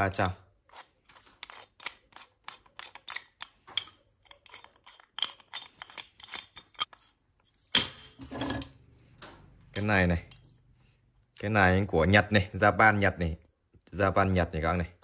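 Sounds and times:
metal wrenches clinking: 0:00.0 - 0:07.1
tools clattering: 0:00.0 - 0:08.9, 0:09.6 - 0:10.5.

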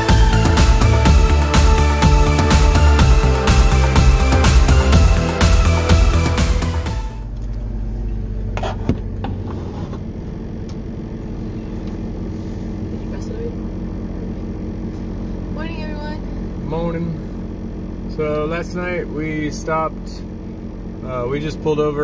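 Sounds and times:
vehicle engine idling: 0:00.0 - 0:22.0.

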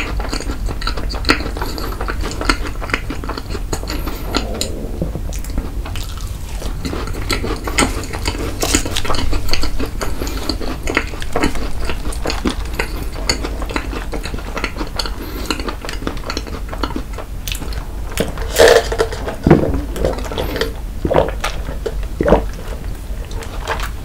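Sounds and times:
close chewing with mouth clicks: 0:00.0 - 0:24.0.

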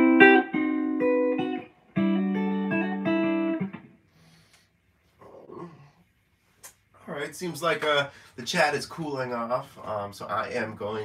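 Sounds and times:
man's soft wordless vocal sound: 0:05.2 - 0:06.1.

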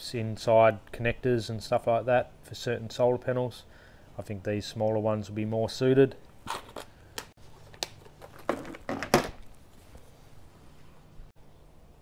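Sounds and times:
rustling: 0:06.3 - 0:11.3.

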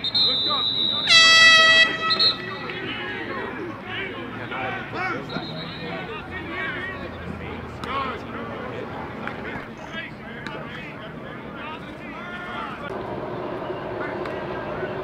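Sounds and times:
scattered voices: 0:00.0 - 0:15.0
air horn blast: 0:01.0 - 0:03.3.

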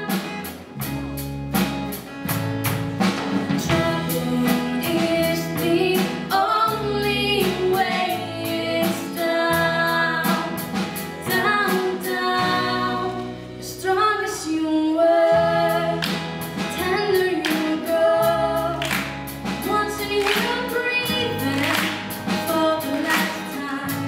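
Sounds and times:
drum kit and cymbals: 0:00.0 - 0:13.3, 0:15.6 - 0:24.0
acoustic guitar: 0:00.0 - 0:24.0
electric guitar: 0:00.0 - 0:24.0
woman singing: 0:03.5 - 0:24.0.

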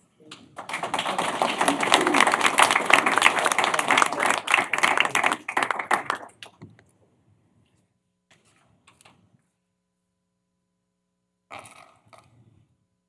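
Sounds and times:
people applauding: 0:00.5 - 0:06.6.

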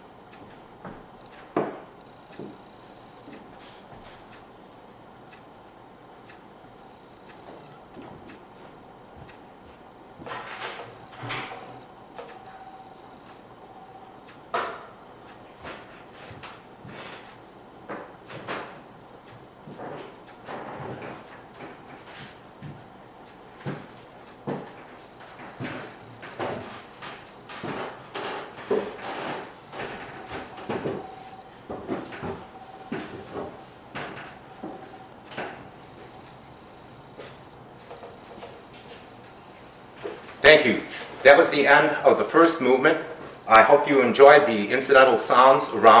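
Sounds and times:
faint steady hum: 0:00.0 - 0:46.0
knocks clicks and creaks: 0:06.3 - 0:42.2.

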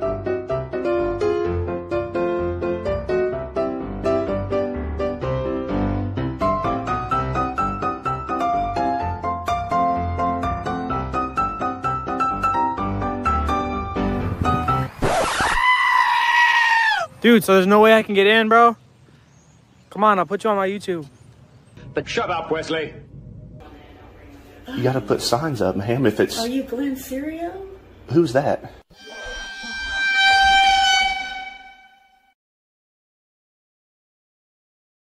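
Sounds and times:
piano music with plucked notes: 0:00.0 - 0:14.9
shrill scream-like cry: 0:15.2 - 0:17.1, 0:28.9 - 0:32.3.

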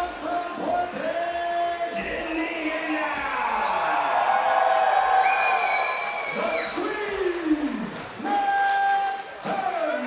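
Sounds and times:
announcer's amplified voice: 0:00.0 - 0:03.7, 0:06.3 - 0:10.0
crowd noise: 0:00.0 - 0:10.0.

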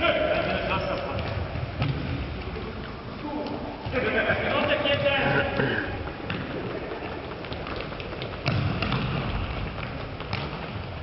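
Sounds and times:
footsteps of players running: 0:00.0 - 0:11.0
ball being kicked: 0:01.2 - 0:02.2, 0:06.2 - 0:06.6, 0:07.5 - 0:10.9.

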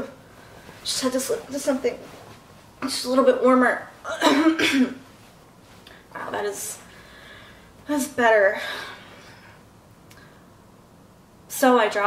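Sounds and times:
woman coughing: 0:04.1 - 0:05.0.

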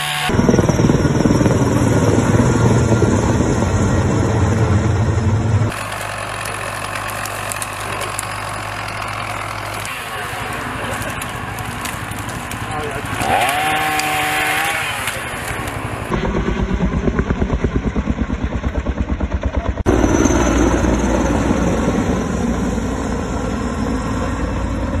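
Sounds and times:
aircraft engine whine: 0:00.0 - 0:13.2, 0:14.7 - 0:25.0
aircraft passing overhead rumble: 0:19.8 - 0:25.0.

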